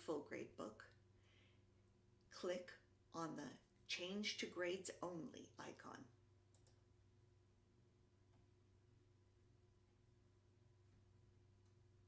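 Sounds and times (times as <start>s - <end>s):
faint steady hum: 0.0s - 12.0s
computer mouse clicks: 6.5s - 6.8s.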